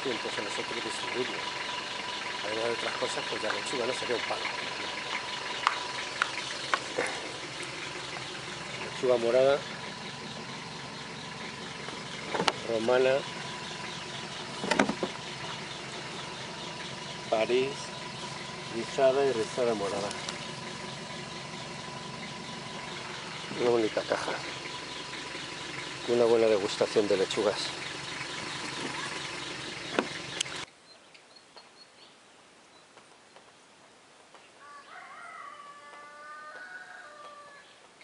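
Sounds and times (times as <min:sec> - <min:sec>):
rooster crowing: 0:34.6 - 0:37.8.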